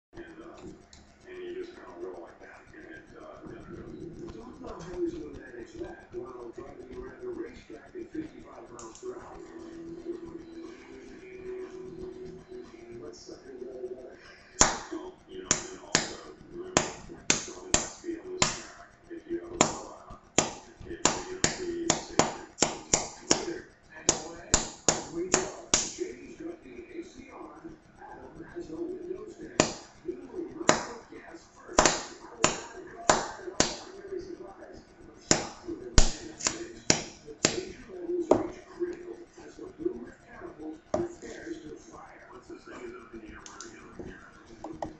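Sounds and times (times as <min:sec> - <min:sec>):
sharp snap: 0:35.3 - 0:37.7.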